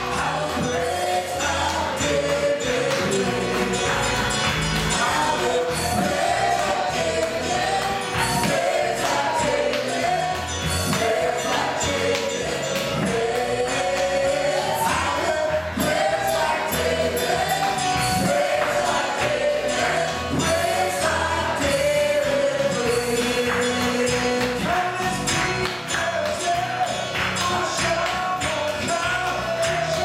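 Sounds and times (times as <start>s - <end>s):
band with drums and guitar: 0.0s - 30.0s
many voices singing together: 0.0s - 30.0s
percussion hits: 0.0s - 30.0s.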